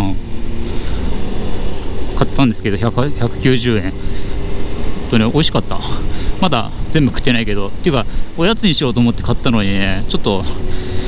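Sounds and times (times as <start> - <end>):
motorcycle engine running: 0.0 - 11.0
wind rush: 0.0 - 11.0.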